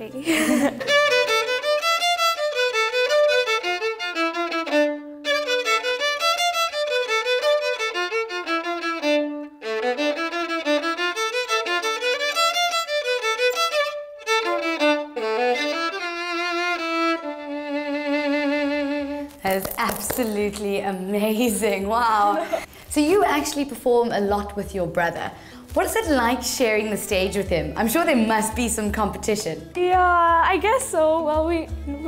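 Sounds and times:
solo violin melody: 0:00.8 - 0:19.4.

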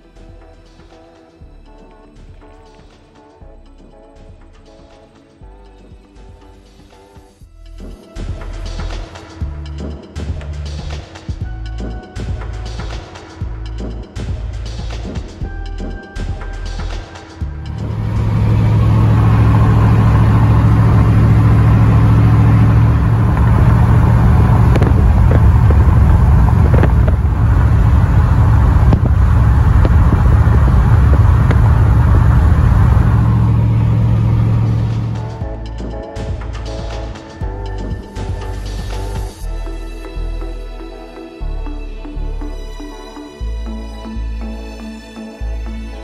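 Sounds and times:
road and wind noise: 0:08.4 - 0:39.4
car engine humming: 0:15.8 - 0:39.4.

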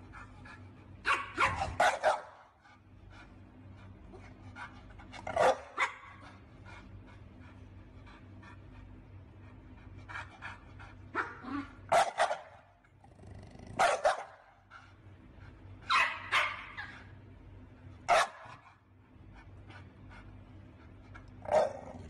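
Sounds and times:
dog barking: 0:01.0 - 0:02.5, 0:05.3 - 0:06.3, 0:11.1 - 0:12.7, 0:13.8 - 0:14.6, 0:15.9 - 0:17.1, 0:18.1 - 0:18.7, 0:21.4 - 0:22.0.

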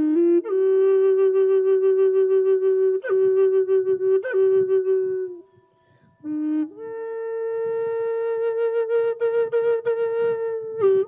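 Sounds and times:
flute holding long note: 0:00.0 - 0:11.0.

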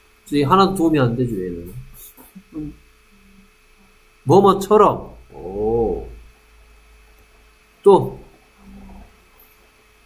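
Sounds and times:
steady electrical hum: 0:00.0 - 0:10.0
man speaking: 0:00.3 - 0:02.0, 0:04.3 - 0:06.2, 0:07.8 - 0:08.3
man humming low: 0:05.3 - 0:06.3.

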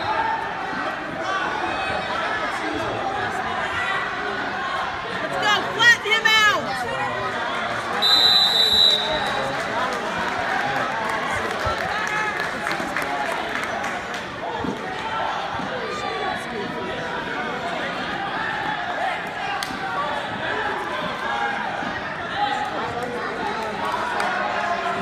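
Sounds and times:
crowd talking and calling out: 0:00.0 - 0:25.0
referee's whistle blowing: 0:08.0 - 0:09.4.

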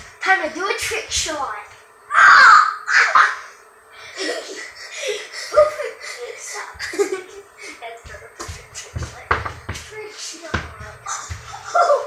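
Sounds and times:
laughter: 0:04.1 - 0:05.9, 0:06.8 - 0:07.5.

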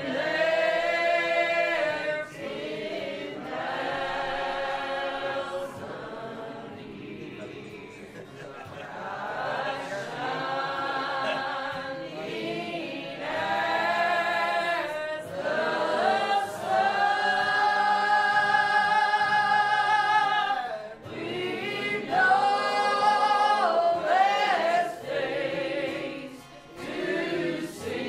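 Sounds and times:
congregation singing a hymn: 0:00.0 - 0:28.0.

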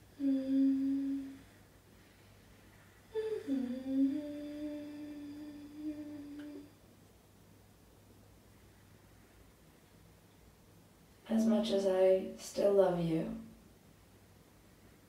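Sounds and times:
woman humming held notes: 0:00.0 - 0:01.6, 0:03.1 - 0:06.8.

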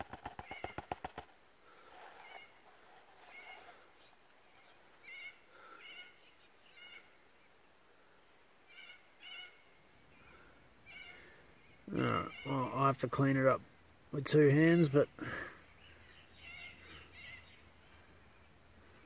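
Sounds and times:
faint bird chirps: 0:01.8 - 0:12.9, 0:14.6 - 0:19.0.

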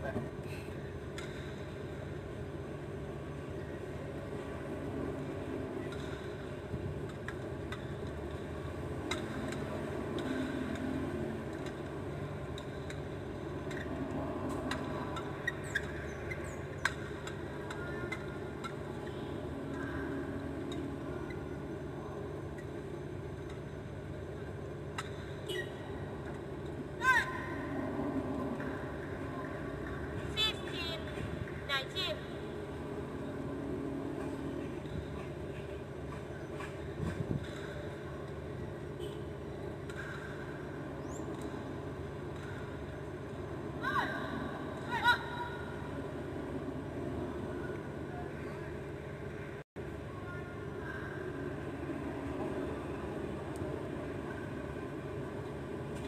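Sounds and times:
shoes squeaking on court: 0:15.2 - 0:17.2.

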